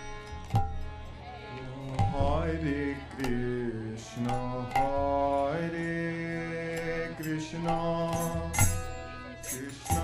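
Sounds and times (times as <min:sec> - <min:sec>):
harmonium sustained notes: 0:00.0 - 0:10.0
person chanting devotional song: 0:00.0 - 0:10.0.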